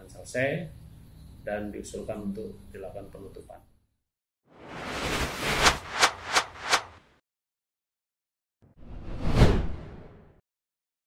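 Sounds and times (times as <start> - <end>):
whoosh transition effect: 4.6 - 7.0.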